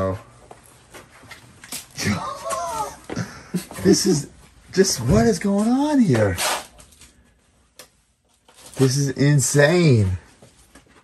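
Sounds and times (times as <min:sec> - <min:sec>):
man exclaiming: 0:02.0 - 0:03.1.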